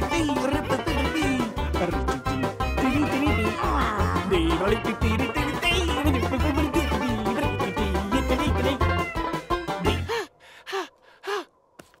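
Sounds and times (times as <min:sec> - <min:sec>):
cartoon voice breathy sounds: 0:03.4 - 0:04.4.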